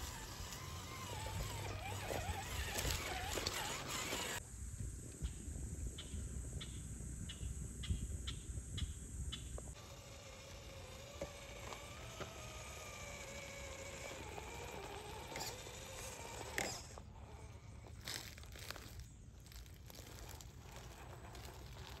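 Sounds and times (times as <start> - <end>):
electric motor whine: 0.0 - 4.4, 9.7 - 22.0
low wind rumble: 4.4 - 9.8.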